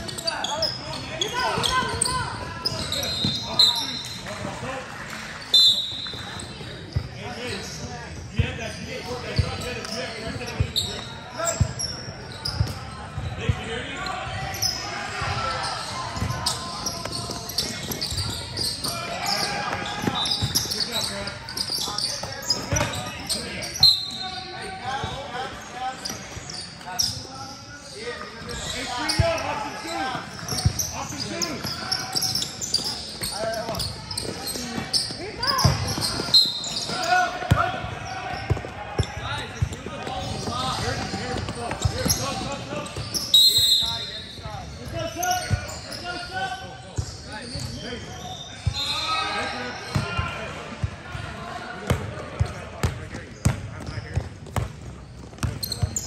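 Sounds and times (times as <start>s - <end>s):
voices in echoing gym: 0.0s - 56.0s
basketball bouncing on court: 33.0s - 37.7s, 51.9s - 56.0s.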